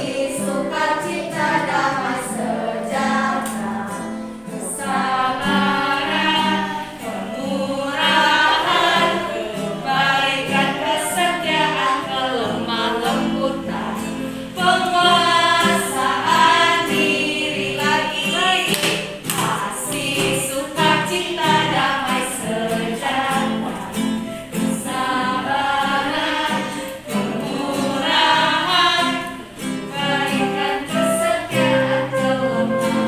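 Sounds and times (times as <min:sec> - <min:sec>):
acoustic guitar strumming: 0:00.0 - 0:33.0
children and women singing: 0:00.0 - 0:33.0.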